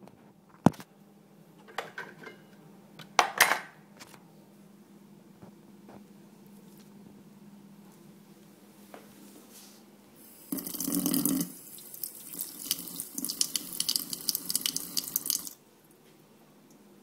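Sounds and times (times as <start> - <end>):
water running from a faucet: 10.2 - 15.6.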